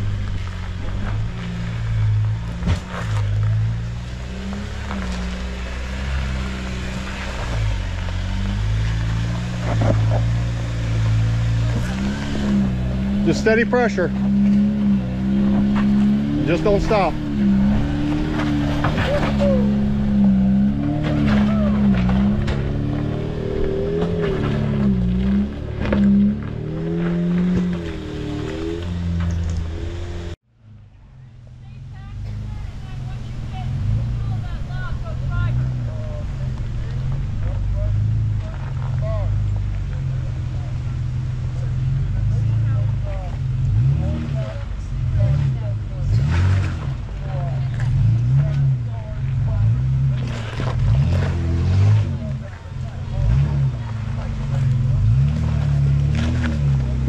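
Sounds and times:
engine climbing under load: 0:00.0 - 0:57.0
lower steady engine: 0:00.0 - 0:57.0.

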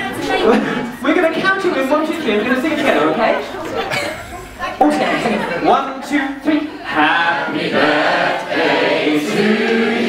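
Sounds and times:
group singing in chorus: 0:06.7 - 0:10.0.

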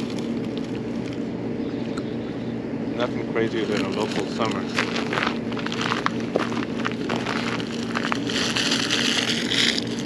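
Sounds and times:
paper bag crinkling: 0:00.0 - 0:01.2, 0:03.5 - 0:10.0
steady low hum: 0:00.0 - 0:10.0.

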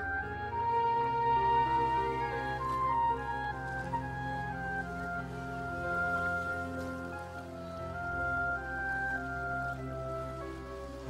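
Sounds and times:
slow melody of long held notes: 0:00.0 - 0:11.0.

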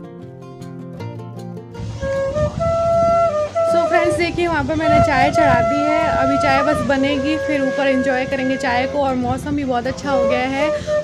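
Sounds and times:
plucked acoustic guitar music: 0:00.0 - 0:11.0
flute playing long notes: 0:01.8 - 0:09.2, 0:09.9 - 0:11.0.

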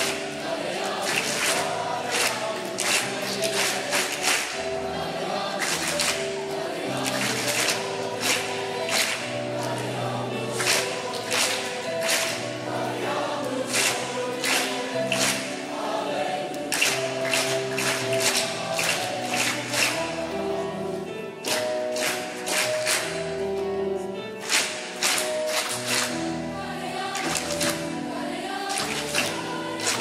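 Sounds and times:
choir singing upbeat song: 0:00.0 - 0:23.2, 0:24.5 - 0:30.0
rhythmic hand clapping: 0:00.0 - 0:30.0.

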